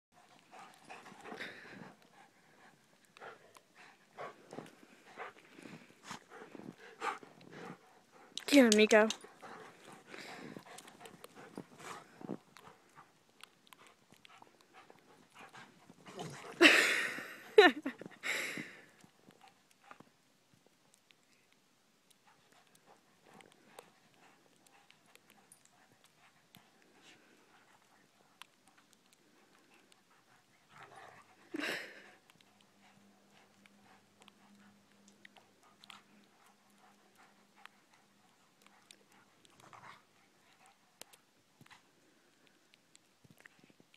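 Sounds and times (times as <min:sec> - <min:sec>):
dogs panting: 0:00.1 - 0:20.2, 0:22.0 - 0:43.9
dogs romping: 0:00.2 - 0:16.7.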